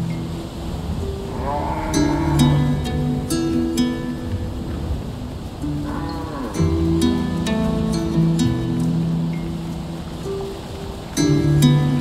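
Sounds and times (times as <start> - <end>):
soft music: 0.0 - 12.0
cow mooing: 1.3 - 3.1, 5.7 - 6.8.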